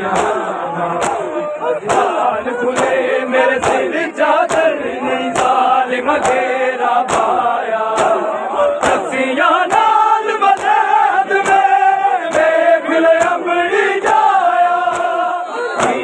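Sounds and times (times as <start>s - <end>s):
crowd of men chanting: 0.0s - 16.0s
hands slapping chests: 0.1s - 16.0s.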